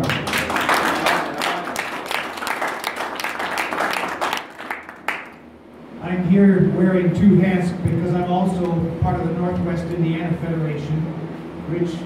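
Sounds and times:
audience clapping: 0.0s - 5.5s.

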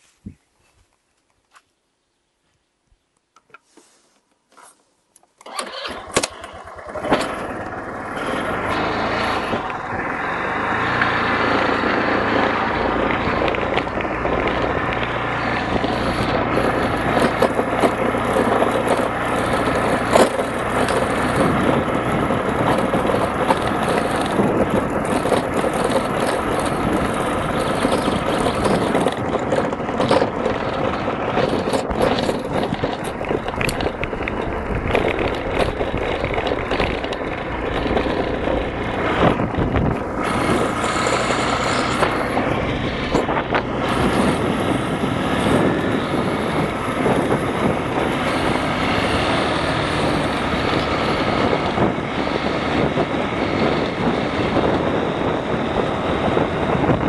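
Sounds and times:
road noise: 3.4s - 57.0s
scooter engine starting and running: 5.3s - 57.0s.

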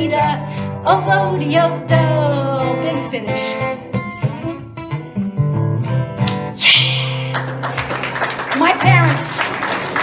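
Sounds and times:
acoustic guitar strumming: 0.1s - 8.0s
people clapping: 6.3s - 10.0s.

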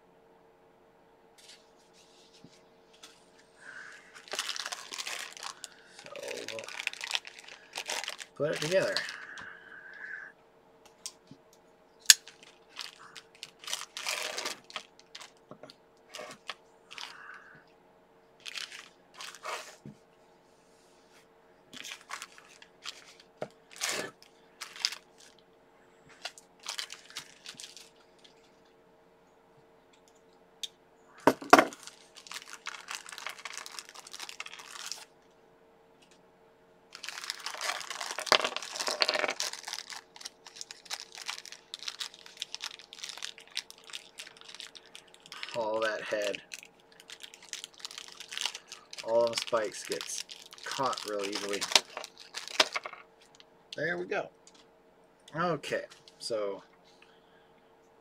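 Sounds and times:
plastic bag crinkling: 3.0s - 9.6s, 12.1s - 15.4s, 16.1s - 17.4s, 18.4s - 19.8s, 21.8s - 25.4s, 26.2s - 28.6s, 31.2s - 35.1s, 36.9s - 53.4s.

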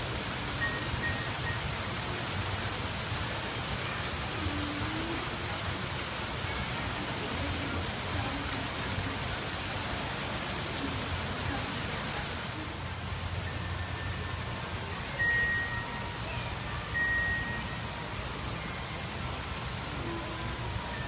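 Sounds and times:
rushing background hiss: 0.0s - 21.0s.

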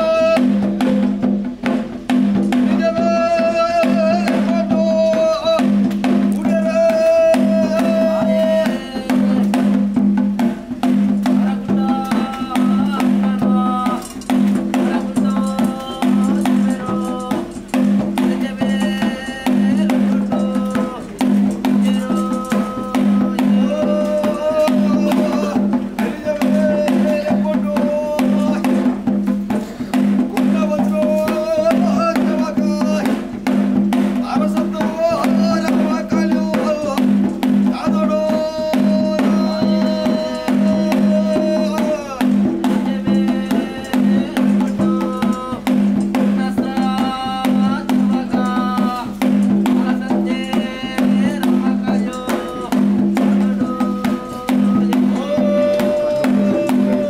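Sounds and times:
barrel drum beating: 0.0s - 57.0s.

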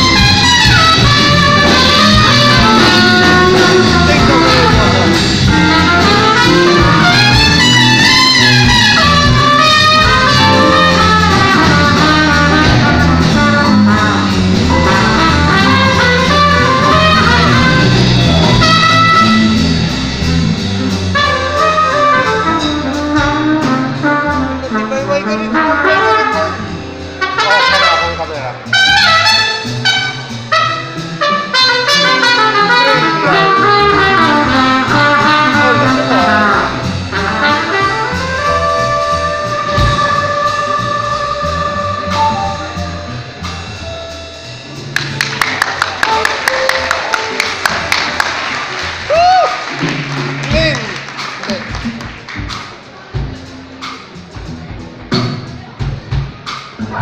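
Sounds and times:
trumpet: 0.0s - 52.6s
jazz band playing: 0.0s - 57.0s.

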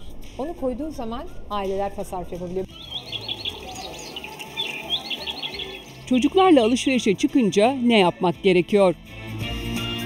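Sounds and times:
toy birds chirping electronically: 2.8s - 6.9s.

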